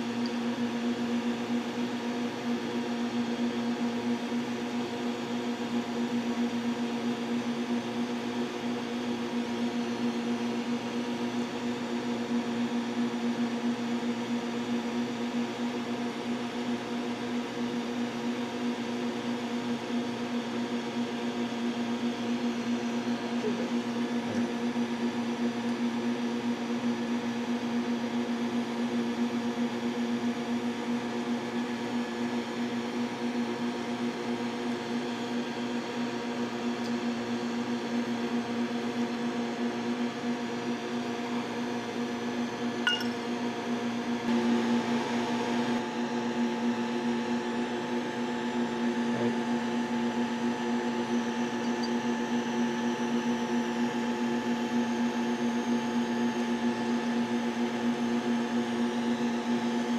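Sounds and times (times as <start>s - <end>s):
steady machine hum: 0.0s - 59.9s.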